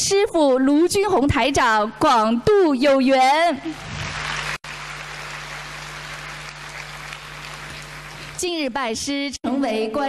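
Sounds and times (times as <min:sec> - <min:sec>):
audience applause: 0:03.8 - 0:08.4.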